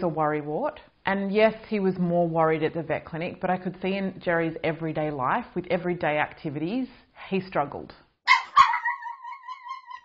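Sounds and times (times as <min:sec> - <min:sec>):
small dog yelping and howling: 0:08.3 - 0:10.0.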